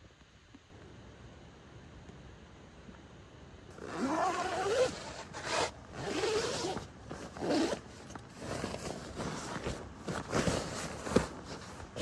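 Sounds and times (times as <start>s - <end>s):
zipper being pulled: 3.7s - 12.0s
fabric rustling and scraping: 3.8s - 12.0s.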